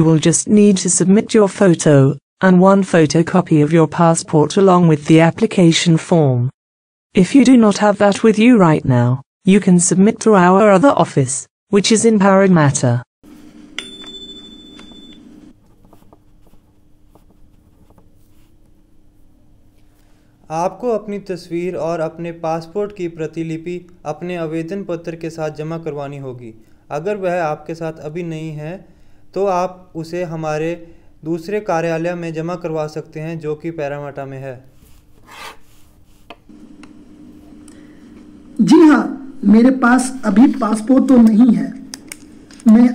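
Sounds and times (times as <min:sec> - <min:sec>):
pen scratching on paper: 0:34.8 - 0:36.4
low playback hum: 0:36.5 - 0:42.9.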